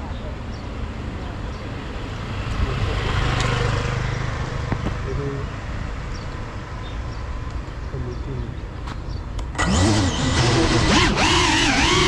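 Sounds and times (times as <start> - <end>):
motor vehicle passing by: 1.5 - 6.4.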